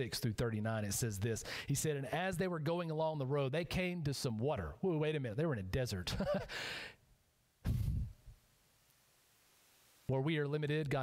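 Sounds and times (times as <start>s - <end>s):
man laughing: 6.1s - 6.6s
man sighing: 6.4s - 6.9s.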